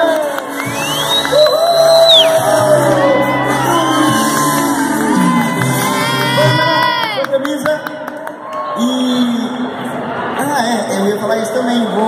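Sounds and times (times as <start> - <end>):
audience cheering and screaming: 0.1 - 7.4.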